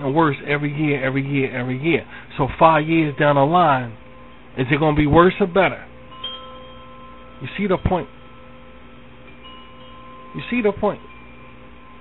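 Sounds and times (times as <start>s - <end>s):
ringing chime-like tones: 1.5s - 12.0s.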